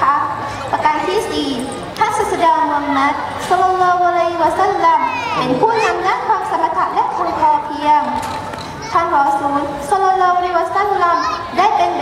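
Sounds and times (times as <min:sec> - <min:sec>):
girl speaking through microphone: 0:00.0 - 0:12.0.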